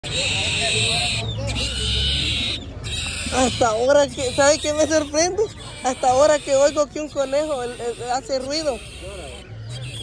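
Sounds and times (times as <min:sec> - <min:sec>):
rabbit squealing: 0:00.0 - 0:10.0.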